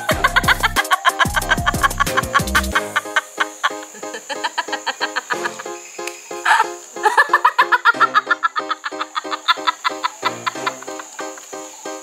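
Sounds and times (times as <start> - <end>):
woman laughing hard: 0.0 - 5.8, 6.4 - 11.5
music: 0.0 - 12.0.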